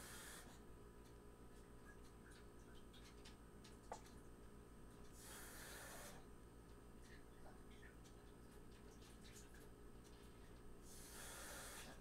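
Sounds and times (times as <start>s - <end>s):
soft hiss of breath: 0.0s - 0.6s, 5.1s - 6.3s, 10.8s - 12.0s
low room hum: 0.0s - 12.0s.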